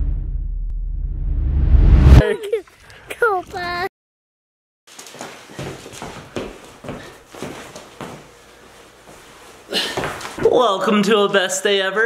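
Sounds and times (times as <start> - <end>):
cloth rustling: 4.9 - 10.4
footsteps on hardwood floor: 4.9 - 10.5.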